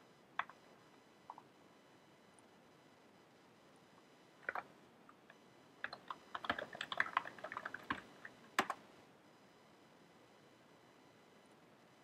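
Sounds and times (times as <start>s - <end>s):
typing on computer keyboard: 0.4s - 0.6s, 4.4s - 4.7s, 5.8s - 8.8s.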